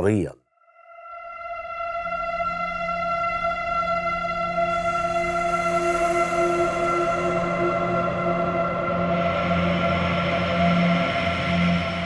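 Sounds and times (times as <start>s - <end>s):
music of sustained tones: 0.7s - 12.0s.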